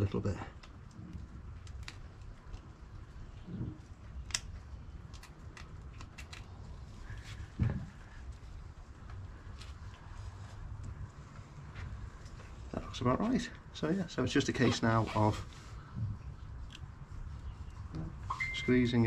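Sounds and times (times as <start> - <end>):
low background hum: 0.0 - 19.0.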